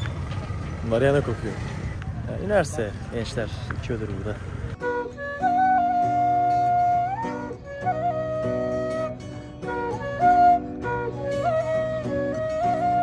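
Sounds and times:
bamboo flute melody: 4.7 - 13.0
acoustic guitar accompaniment: 4.8 - 13.0.

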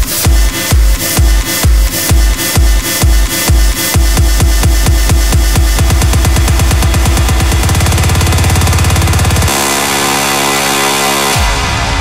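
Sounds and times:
electronic dance music: 0.0 - 12.0
held synth chords: 0.0 - 12.0
fast drum roll: 4.0 - 9.6.

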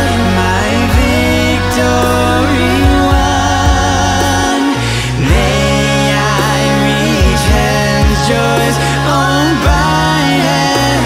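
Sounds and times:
held bass note: 0.0 - 11.0
men singing in close harmony: 0.0 - 11.0
vocal percussion kick beats: 0.0 - 11.0.

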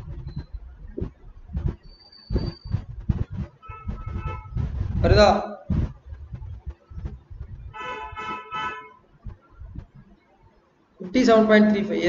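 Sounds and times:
low rumble: 0.0 - 10.2
vehicle horn honking: 3.6 - 4.6, 7.8 - 9.0.

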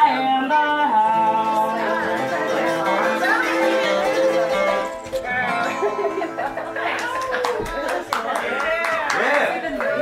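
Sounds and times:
voices: 0.0 - 10.0
people laughing: 1.6 - 10.0
people clapping: 6.4 - 10.0.

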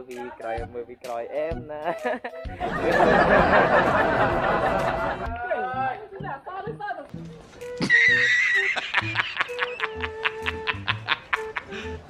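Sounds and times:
background music: 0.0 - 12.0
horse whinny: 7.8 - 8.7.

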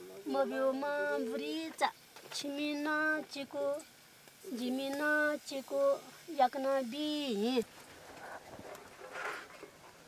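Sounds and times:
brief soft hiss: 7.7 - 9.8.

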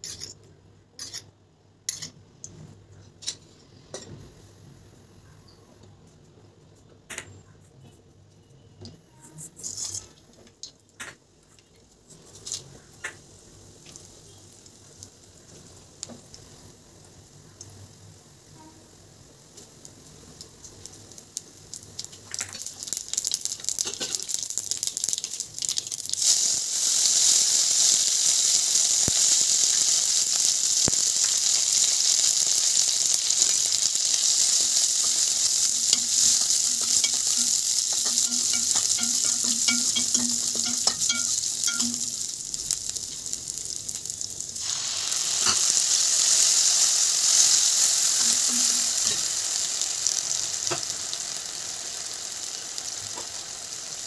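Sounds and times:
spatula stirring: 0.0 - 0.4, 1.0 - 1.3, 1.9 - 2.2, 33.3 - 42.4
spices crackling in hot oil: 0.0 - 2.6, 8.9 - 54.0
loud steady sizzle: 9.1 - 54.0.

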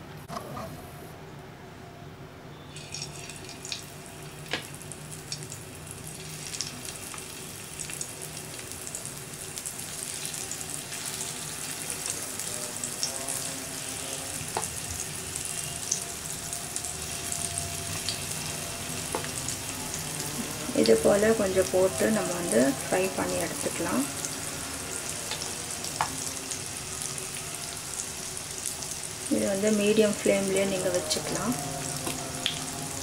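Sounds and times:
slices sizzling in hot oil: 2.7 - 33.0.

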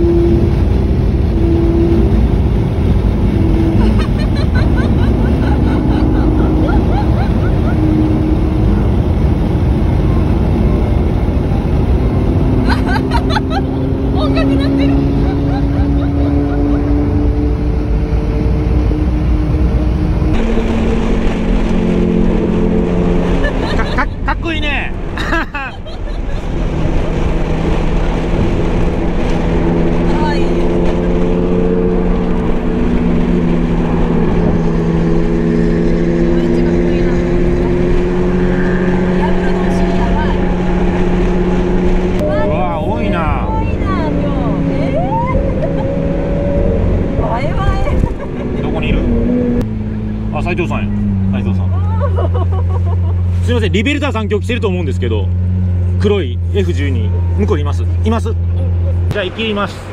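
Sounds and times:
car engine cruising: 0.0 - 59.9.

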